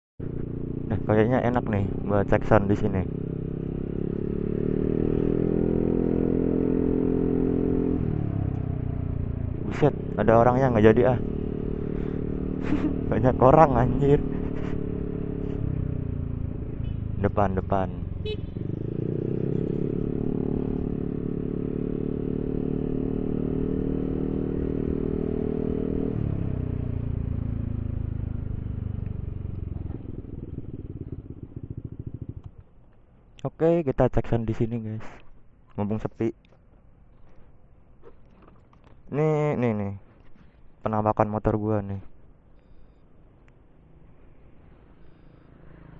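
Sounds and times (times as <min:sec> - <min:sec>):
scooter engine running: 0:00.2 - 0:32.8, 0:43.8 - 0:45.9.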